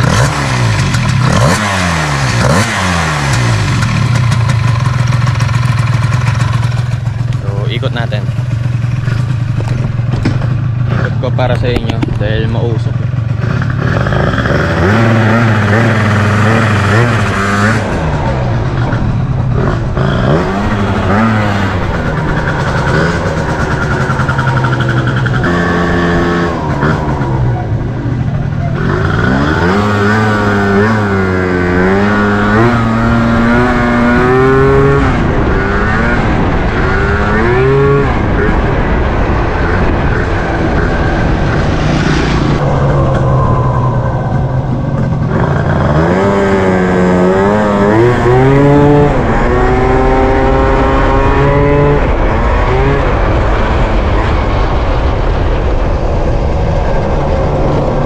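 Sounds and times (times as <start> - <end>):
scooter engine revving: 0.0 - 55.6
person talking: 11.0 - 13.0.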